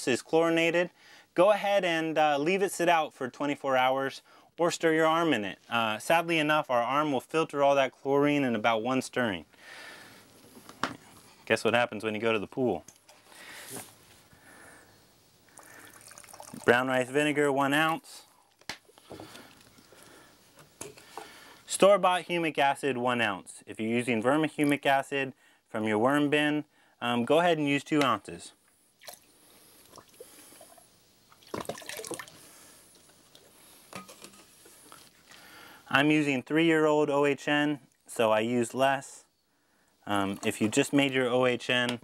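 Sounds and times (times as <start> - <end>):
water drip: 15.4 - 16.8, 29.0 - 32.4
liquid pouring into water: 15.5 - 16.8, 29.0 - 32.4
liquid trickling into a cup: 15.5 - 16.8, 31.4 - 32.4
water splash: 31.4 - 32.4.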